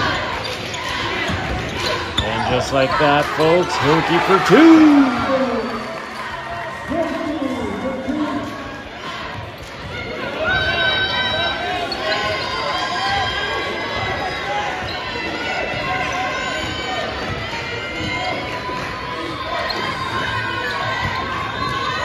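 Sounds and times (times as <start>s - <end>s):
crowd chatter: 0.0s - 22.0s
people shouting: 2.2s - 6.0s.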